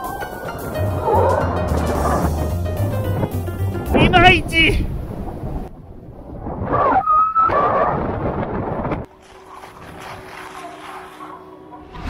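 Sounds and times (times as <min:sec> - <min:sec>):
wind on microphone: 0:00.8 - 0:09.1
snowboard squeal: 0:06.8 - 0:08.0
snowboard sliding over snow: 0:09.1 - 0:11.4.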